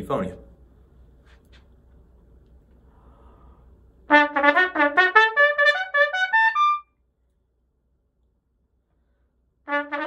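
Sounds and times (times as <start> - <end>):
piccolo trumpet playing short notes: 4.1 - 6.9.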